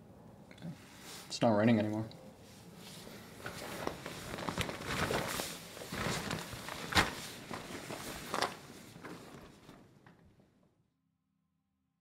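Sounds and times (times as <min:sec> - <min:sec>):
tent fabric rustling: 0:02.7 - 0:10.0.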